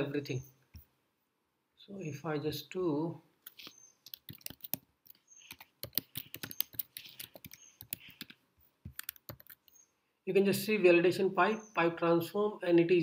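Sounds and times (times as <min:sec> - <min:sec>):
computer keyboard typing: 0:03.5 - 0:09.8.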